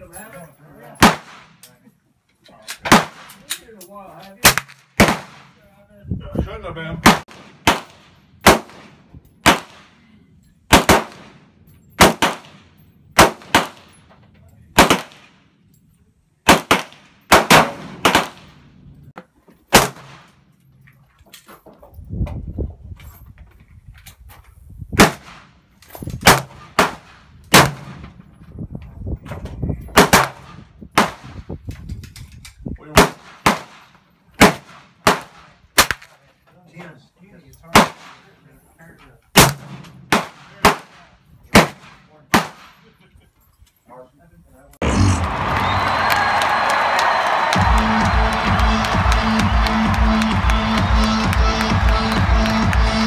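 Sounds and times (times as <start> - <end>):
rifle shots with echo: 7.0 - 10.0, 10.7 - 14.0, 14.8 - 15.5, 16.5 - 18.6, 39.4 - 42.8.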